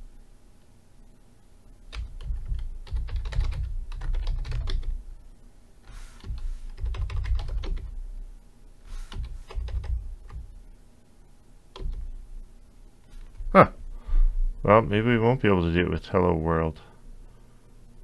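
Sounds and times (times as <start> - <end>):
typing on a keyboard: 1.9 - 4.9, 6.2 - 7.9, 9.1 - 10.4, 11.8 - 12.1.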